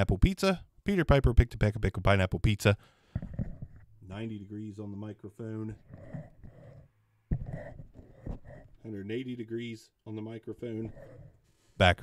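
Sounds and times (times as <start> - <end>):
microphone rubbing and knocks: 3.1 - 4.1, 5.7 - 8.8.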